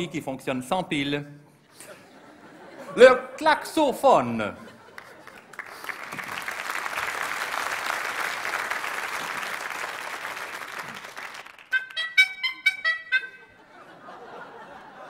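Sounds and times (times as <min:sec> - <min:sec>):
audience applause: 0:04.9 - 0:12.0
rubber-bulb horn honks: 0:11.7 - 0:13.6.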